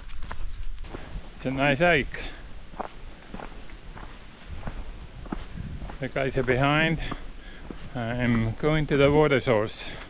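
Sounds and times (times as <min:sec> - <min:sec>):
footsteps on dirt trail: 0:00.0 - 0:10.0.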